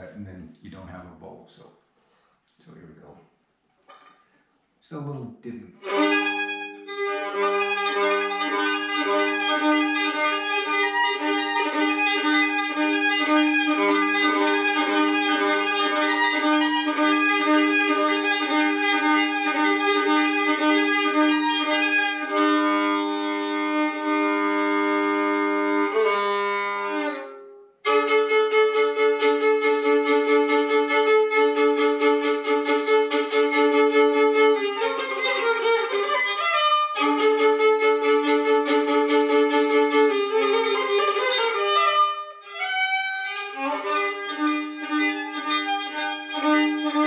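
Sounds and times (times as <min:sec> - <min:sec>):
solo violin playing: 0:05.7 - 0:47.0.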